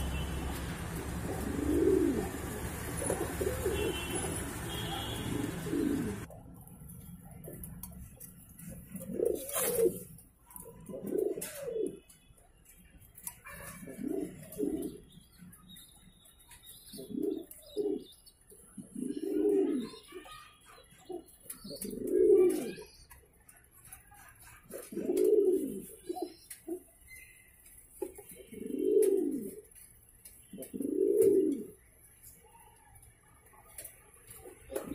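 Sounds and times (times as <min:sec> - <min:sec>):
pigeons cooing: 0:00.0 - 0:06.3, 0:07.3 - 0:12.1, 0:13.2 - 0:15.2, 0:16.9 - 0:20.3, 0:21.0 - 0:23.2, 0:24.5 - 0:26.9, 0:28.0 - 0:32.8, 0:33.7 - 0:34.9.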